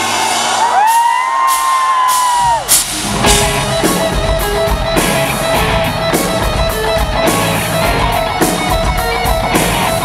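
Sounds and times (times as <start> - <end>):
crowd whooping: 0.0 - 3.2
rock band playing: 0.0 - 10.0
electric guitar rock intro: 2.6 - 10.0.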